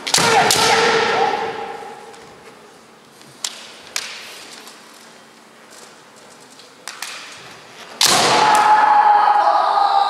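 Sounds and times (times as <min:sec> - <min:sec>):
long loud shout: 0:08.3 - 0:10.0.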